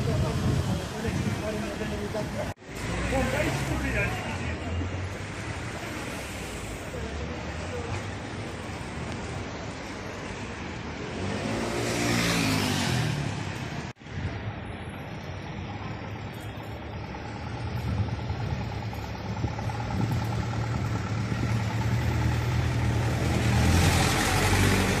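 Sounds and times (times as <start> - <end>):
motor vehicle passing: 11.0 - 13.9, 17.6 - 25.0
heavy vehicle engine running: 15.6 - 25.0.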